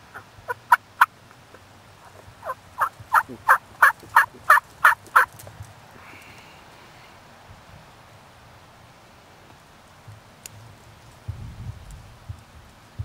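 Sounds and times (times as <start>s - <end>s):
turkey calling: 0.0s - 1.1s, 2.0s - 5.3s.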